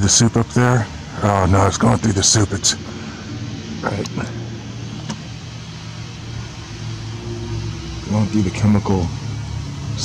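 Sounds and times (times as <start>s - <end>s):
even hiss: 0.0s - 10.0s
low mechanical hum: 0.0s - 10.0s.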